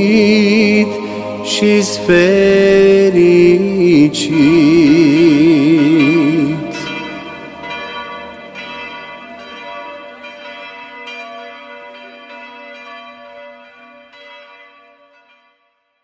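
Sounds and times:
held low note: 0:00.0 - 0:08.6
bell tones: 0:00.0 - 0:11.5.

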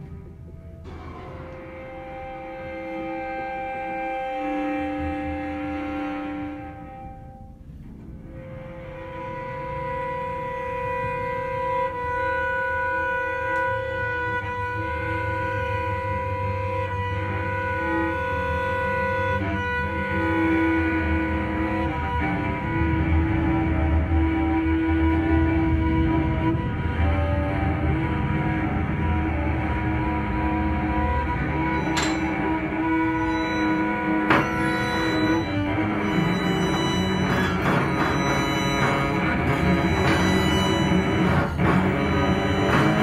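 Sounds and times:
low cello notes: 0:00.0 - 0:43.0
violin sustained bowed notes: 0:00.0 - 0:43.0.

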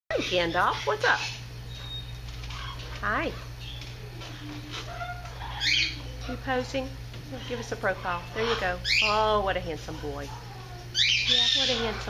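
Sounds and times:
parrot squawk: 0:04.8 - 0:06.2, 0:07.4 - 0:09.3, 0:09.9 - 0:12.0
parrot whistling: 0:05.5 - 0:06.1, 0:10.9 - 0:11.8.

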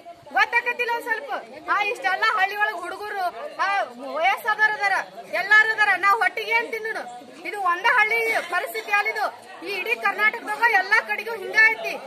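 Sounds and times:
women talking in a crowd: 0:00.0 - 0:12.0.

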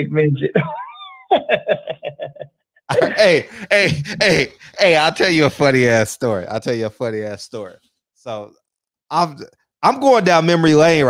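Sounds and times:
man laughing: 0:00.6 - 0:05.6.

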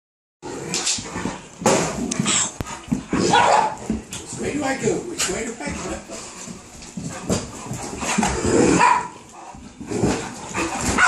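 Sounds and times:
dog barking: 0:03.2 - 0:03.8, 0:08.7 - 0:09.2.

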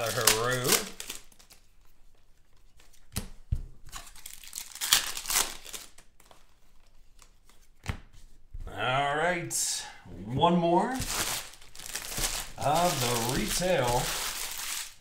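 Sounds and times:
wrapper tearing and crinkling: 0:00.0 - 0:01.6, 0:03.9 - 0:06.3, 0:11.0 - 0:15.0.

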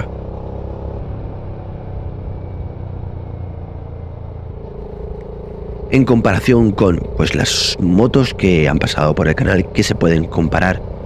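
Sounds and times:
motorcycle engine running: 0:00.0 - 0:11.0
humming tone: 0:00.1 - 0:08.2.

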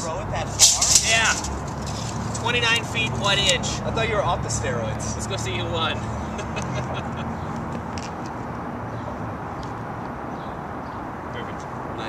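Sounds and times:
hum of street traffic: 0:00.0 - 0:12.0.

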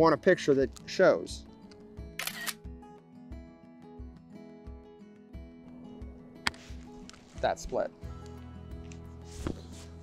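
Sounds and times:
background music with steady beat: 0:00.0 - 0:10.0
camera shutter click: 0:02.2 - 0:02.6.

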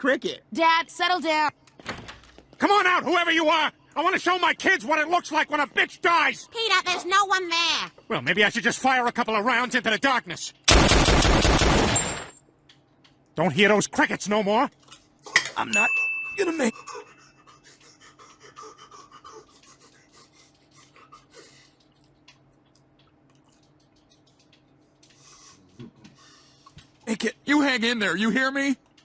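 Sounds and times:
handgun firing rapid shots: 0:10.7 - 0:12.3
faint clicks: 0:21.6 - 0:25.2.

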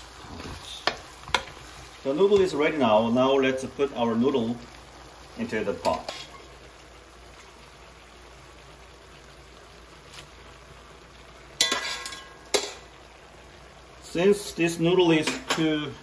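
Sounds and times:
wok simmering with faint hiss: 0:00.0 - 0:16.0.

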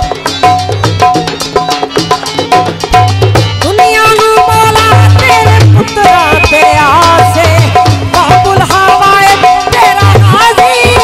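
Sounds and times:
hand drum rhythm: 0:00.0 - 0:11.0
woman singing through microphone: 0:03.6 - 0:11.0.

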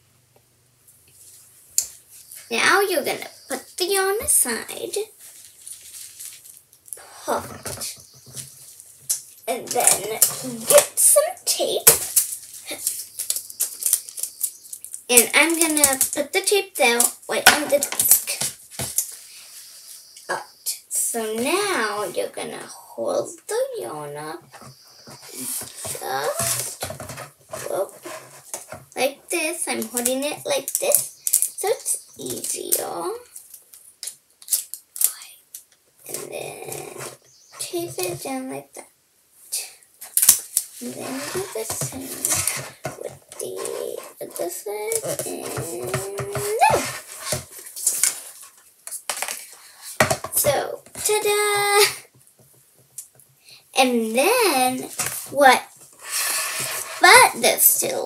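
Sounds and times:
girl talking: 0:02.5 - 0:05.1, 0:07.0 - 0:07.9, 0:09.5 - 0:12.0, 0:15.1 - 0:18.5, 0:20.3 - 0:24.5, 0:25.3 - 0:26.8, 0:27.6 - 0:28.0, 0:29.0 - 0:33.3, 0:36.1 - 0:38.8, 0:39.5 - 0:39.8, 0:40.8 - 0:46.9, 0:50.3 - 0:52.1, 0:53.8 - 0:55.7, 0:57.0 - 0:58.0
adhesive tape crackling: 0:11.8 - 0:19.2, 0:29.8 - 0:36.2, 0:40.0 - 0:49.5.

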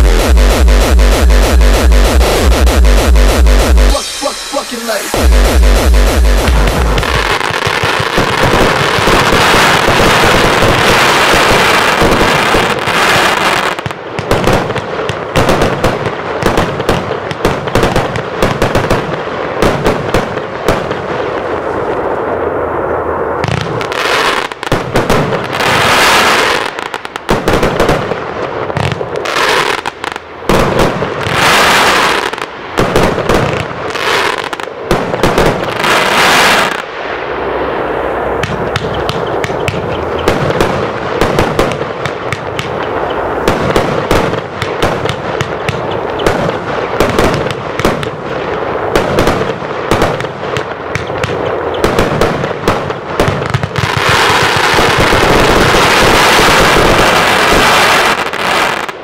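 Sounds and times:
fireworks launching and bursting: 0:00.0 - 0:59.0.

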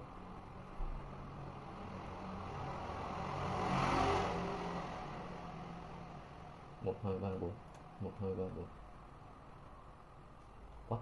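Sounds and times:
road vehicle passing by: 0:00.0 - 0:10.0.

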